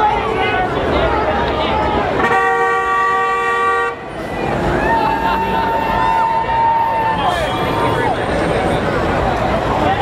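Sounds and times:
crowd voices on street: 0.0 - 10.0
car horn honk: 2.2 - 4.1.

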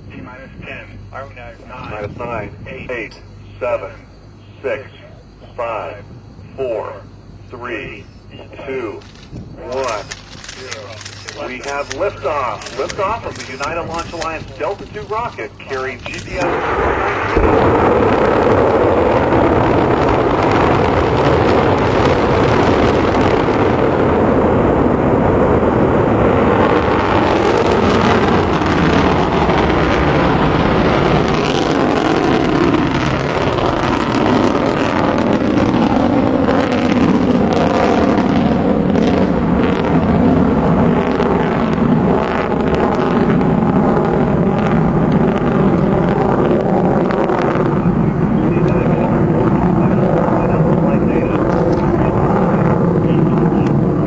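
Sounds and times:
distant rocket engine rumble: 0.0 - 54.0.

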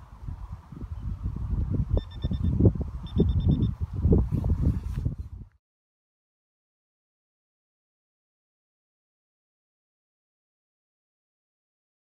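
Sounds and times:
rapid high beeps: 2.0 - 3.8.

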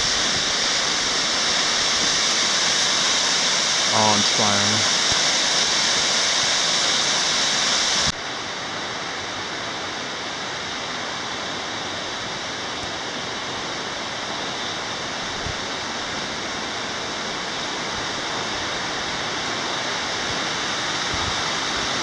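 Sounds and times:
water rushing over rocks: 0.0 - 8.1.

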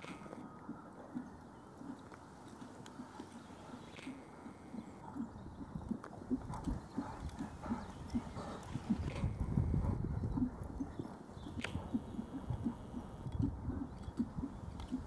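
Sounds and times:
horse hoofbeats on sand: 0.0 - 15.0.

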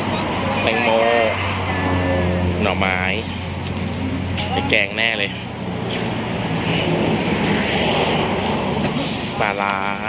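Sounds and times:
road traffic rush: 0.0 - 10.0.

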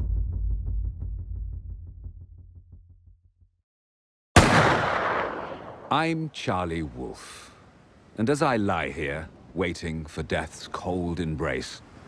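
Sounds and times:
loud hit with noisy decay: 4.4 - 5.9.

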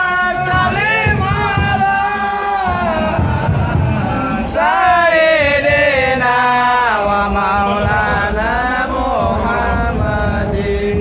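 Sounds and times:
voice chanting long notes: 0.0 - 11.0.

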